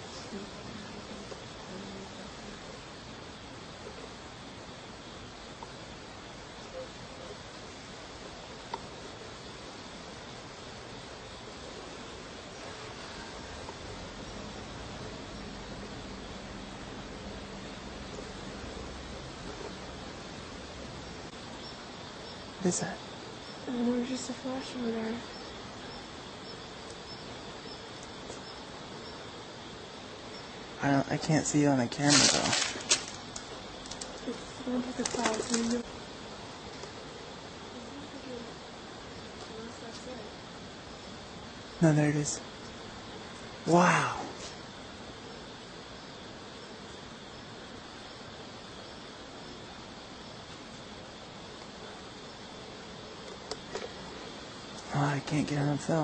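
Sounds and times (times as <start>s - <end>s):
outdoor background hiss: 0.0s - 56.0s.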